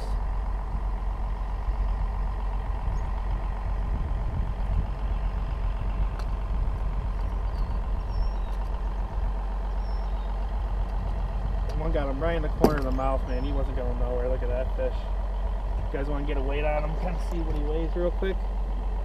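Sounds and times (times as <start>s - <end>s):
boat engine idling: 0.0s - 19.0s.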